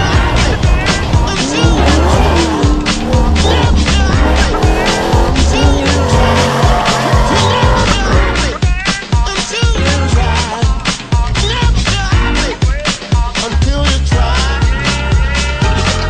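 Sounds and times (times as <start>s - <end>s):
truck engine revving: 0.0s - 8.6s
music with steady beat: 0.0s - 16.0s.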